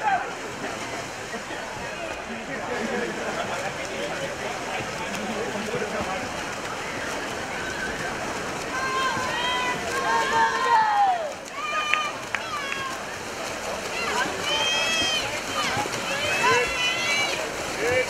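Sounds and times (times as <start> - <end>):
crowd shouting and cheering: 0.0 - 0.7, 7.0 - 18.0
water splashing from swimmers: 0.0 - 18.0.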